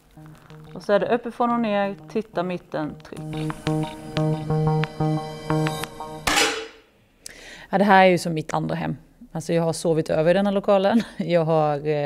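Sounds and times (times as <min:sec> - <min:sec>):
plucked guitar music: 0:00.0 - 0:06.6
air rifle shot: 0:06.3 - 0:06.8.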